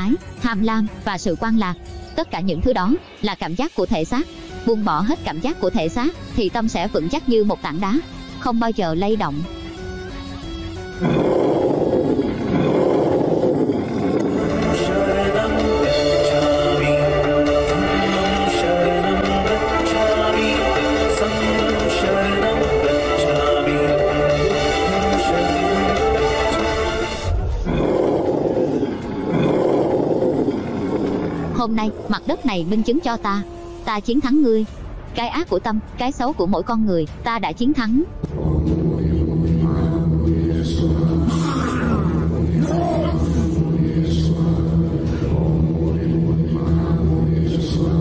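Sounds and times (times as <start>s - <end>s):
person speaking: 0.0s - 9.5s, 31.6s - 38.1s
soft music: 0.0s - 12.7s, 31.6s - 43.9s
loud rough roar: 11.0s - 18.8s, 23.3s - 32.1s.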